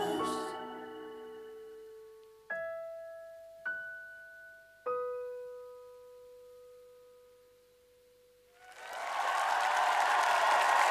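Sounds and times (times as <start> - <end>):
audience applause: 8.6 - 10.9.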